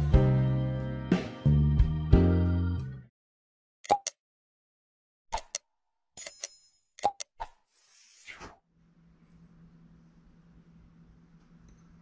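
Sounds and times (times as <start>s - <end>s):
pop sound effect: 3.9s - 4.2s.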